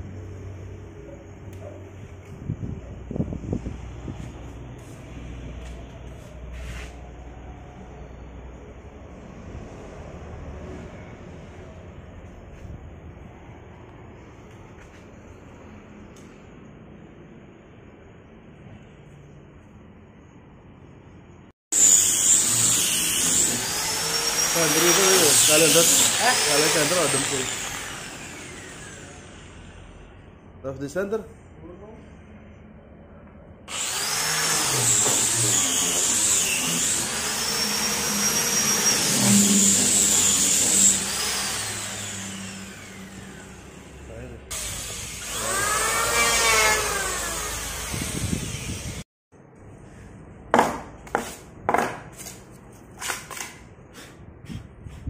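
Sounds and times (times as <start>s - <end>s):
angle grinder sanding wood: 21.8s - 29.0s, 33.7s - 49.0s.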